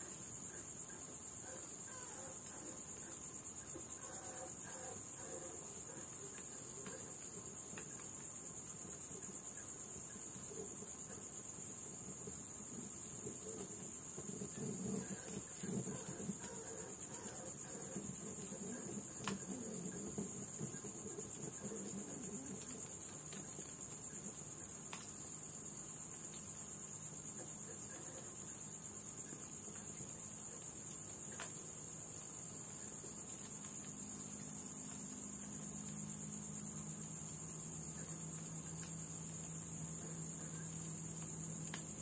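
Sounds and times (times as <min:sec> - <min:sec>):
night insects trilling: 0:00.0 - 0:42.0
wood fire crackling: 0:00.0 - 0:42.0
fire popping: 0:05.6 - 0:25.4, 0:29.1 - 0:35.0, 0:37.9 - 0:42.0.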